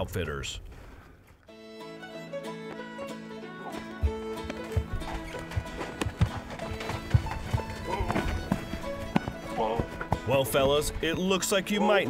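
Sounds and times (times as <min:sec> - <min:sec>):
string band music: 0:01.5 - 0:12.0
horse hooves thudding in snow: 0:03.6 - 0:12.0.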